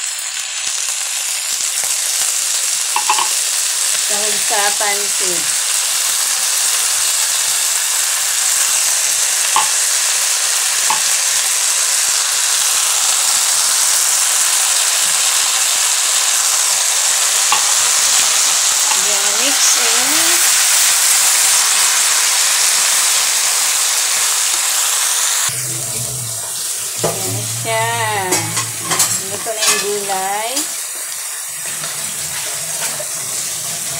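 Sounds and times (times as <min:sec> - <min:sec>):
vegetables sizzling in a wok: 0:00.0 - 0:33.9
low hum: 0:25.5 - 0:29.4.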